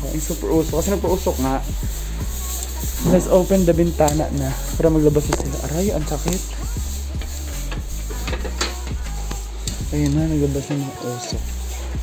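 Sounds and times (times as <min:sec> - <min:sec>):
steady low hum: 0:00.0 - 0:10.7, 0:11.3 - 0:12.0.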